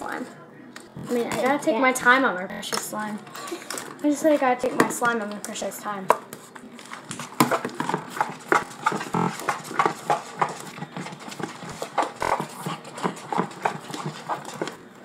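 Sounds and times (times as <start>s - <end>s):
spoon scraping a bowl: 7.5s - 14.8s.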